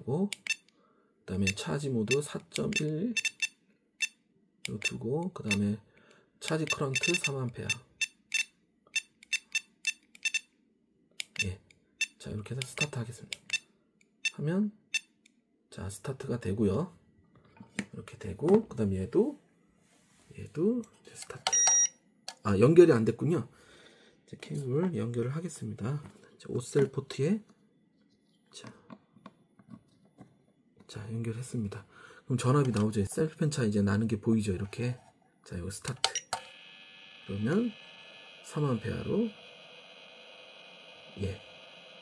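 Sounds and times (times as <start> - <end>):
short electronic beeps: 3.1 - 4.2, 6.7 - 10.5.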